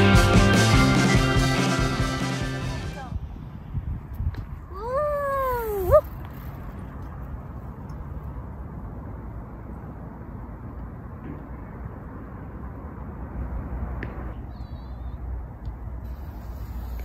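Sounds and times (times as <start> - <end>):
wind: 0.0 - 17.0
bike tyres rolling on pavement: 3.9 - 8.6, 16.0 - 17.0.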